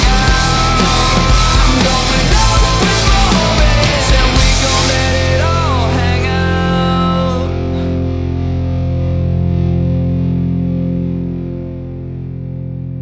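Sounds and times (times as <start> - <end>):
distorted electric guitar chord ringing: 0.0 - 13.0.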